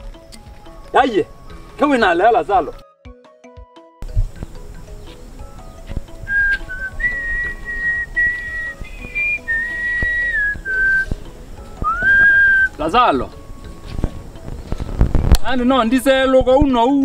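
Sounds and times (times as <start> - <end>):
faint background music: 0.0 - 17.0
person whistling a slow tune: 6.3 - 11.2, 11.8 - 12.8.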